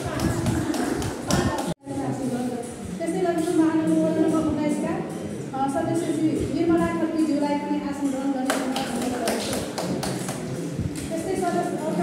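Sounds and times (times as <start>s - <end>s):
group clapping hands: 0.0s - 1.8s, 8.5s - 11.1s
voices: 0.0s - 12.0s
laughter: 0.2s - 1.6s.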